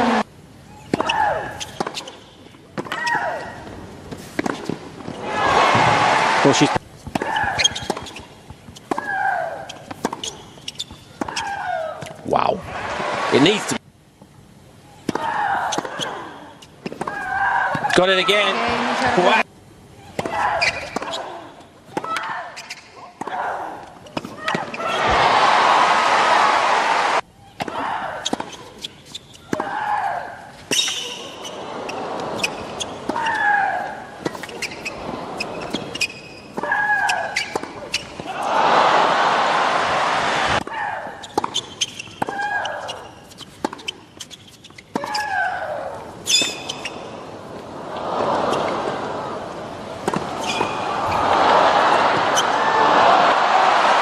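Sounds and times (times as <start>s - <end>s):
crowd applause and cheering: 5.2s - 6.8s, 12.7s - 13.8s, 25.0s - 27.2s, 38.3s - 40.6s, 50.8s - 54.0s.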